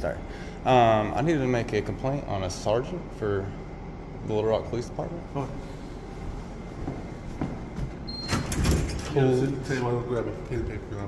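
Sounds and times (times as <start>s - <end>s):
door swinging: 8.1s - 9.2s.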